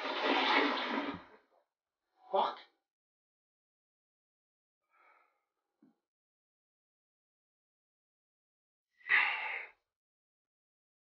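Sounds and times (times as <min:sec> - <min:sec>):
toilet flushing water rush: 0:00.0 - 0:01.3.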